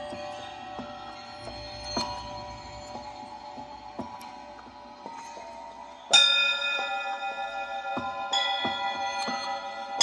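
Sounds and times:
bell-like metallic strike: 0:05.1 - 0:10.0.

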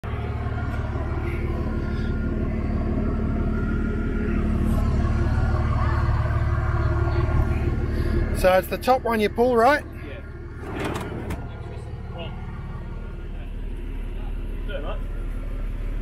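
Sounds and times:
diesel engine idling: 0:00.0 - 0:16.0.

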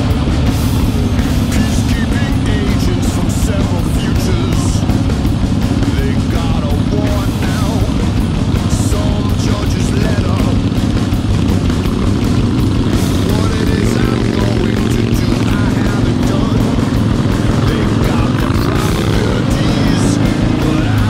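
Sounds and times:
motorcycle engines running: 0:00.0 - 0:21.0
rock music with singing: 0:00.0 - 0:21.0.

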